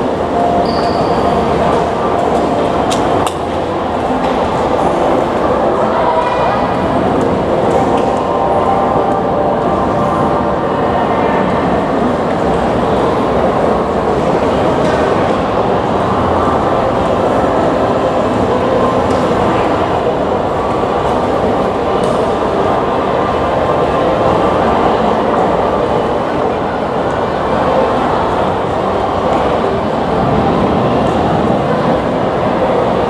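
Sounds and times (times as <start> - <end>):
many voices: 0.0 - 33.0
traffic: 0.0 - 33.0.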